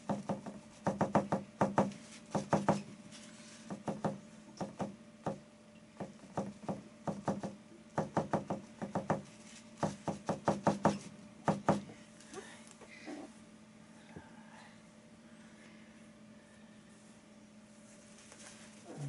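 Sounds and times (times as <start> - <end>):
paintbrush tapping canvas: 0.0 - 2.9
faint steady hum: 0.0 - 19.0.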